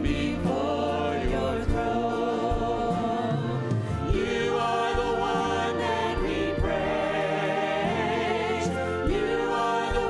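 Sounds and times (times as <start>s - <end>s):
choir singing worship song: 0.0s - 10.0s
orchestra accompaniment: 0.0s - 10.0s.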